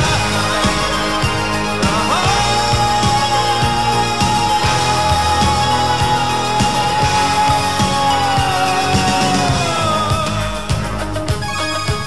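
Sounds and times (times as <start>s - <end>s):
steady drum beat: 0.0s - 12.0s.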